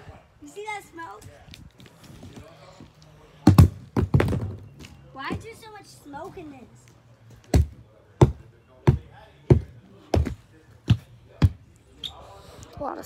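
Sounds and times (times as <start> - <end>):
axe striking wooden board: 7.5 - 9.6.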